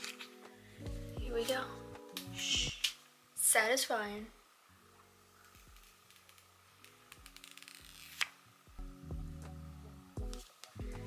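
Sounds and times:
plastic film peeling: 0.0 - 0.4, 5.4 - 8.4
soft background music: 0.0 - 11.0.

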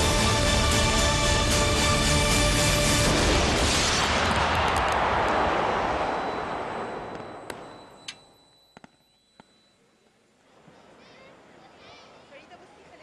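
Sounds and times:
fireworks wash of sound: 2.3 - 7.8
fireworks sharp cracks: 3.1 - 8.0.

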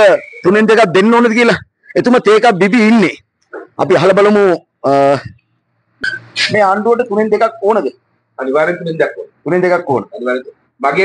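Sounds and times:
man talking into microphone: 0.0 - 5.4, 6.1 - 11.0.

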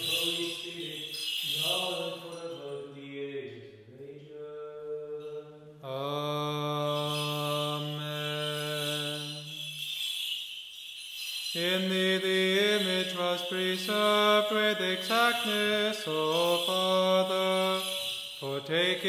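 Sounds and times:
man chanting: 0.0 - 9.7, 11.6 - 19.0.

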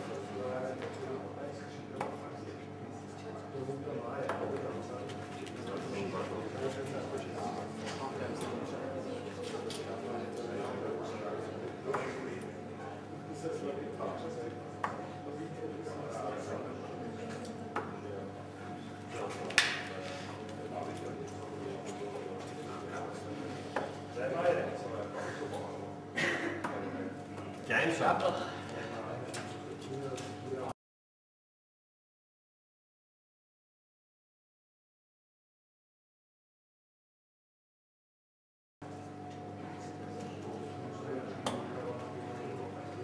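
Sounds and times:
murmur of voices: 0.0 - 30.7, 39.4 - 43.0.

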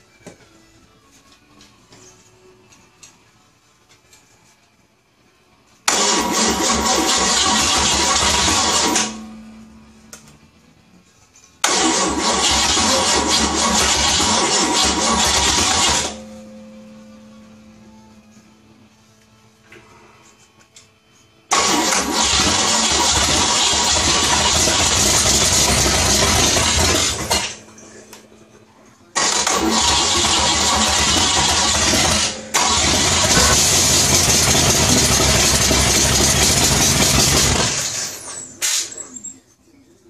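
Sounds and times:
car engine running loudly: 21.5 - 27.6, 29.2 - 38.0.

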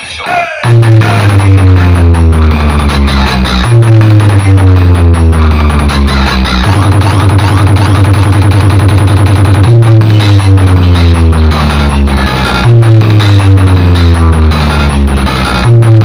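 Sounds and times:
electronic dance music: 0.0 - 16.0.

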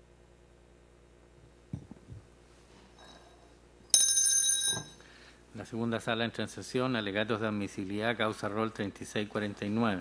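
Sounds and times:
bell ringing: 3.9 - 5.0.

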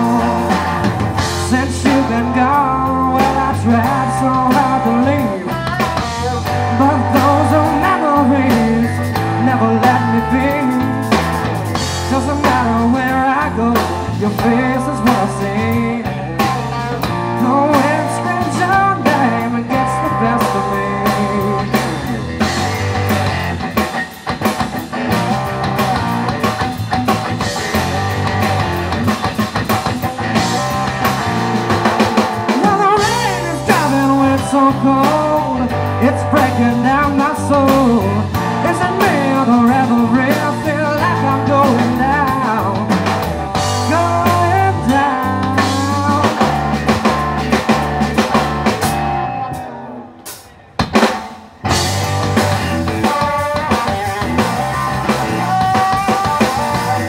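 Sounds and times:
drum kit: 0.0 - 57.0
electric bass: 0.0 - 57.0
electric guitar: 0.0 - 57.0
live rock band playing: 0.0 - 57.0.

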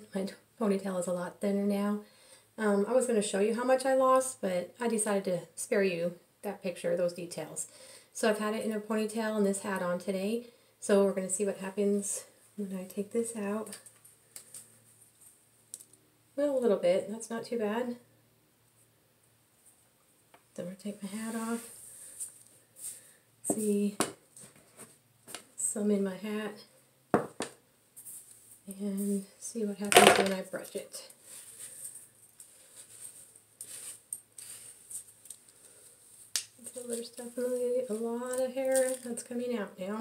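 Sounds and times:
faint rustling of hair: 12.0 - 16.0, 18.6 - 25.8, 27.9 - 39.5
hairbrush brushing through hair: 32.7 - 35.2.

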